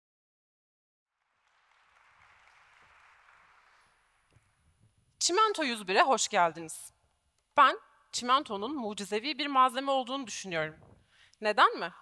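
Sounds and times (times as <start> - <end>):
faint audience applause: 1.1 - 4.8.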